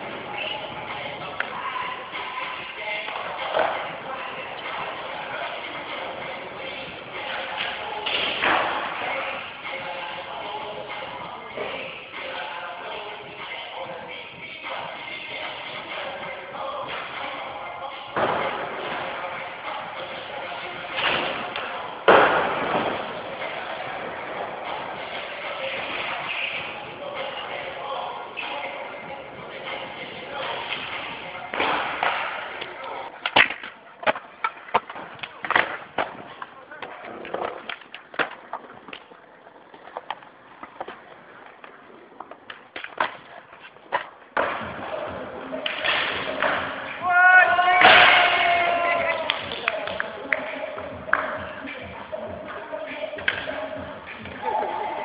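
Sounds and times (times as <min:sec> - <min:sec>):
skateboard wheels rolling: 0:00.0 - 0:55.0
skateboard clacking on surface: 0:31.6 - 0:44.7
person shouting with echo: 0:47.0 - 0:49.4.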